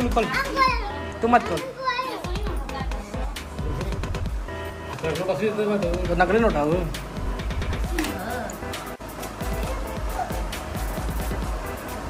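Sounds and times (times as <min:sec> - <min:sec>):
family voices talking: 0:00.0 - 0:04.5, 0:07.7 - 0:11.6
background music: 0:00.0 - 0:12.0.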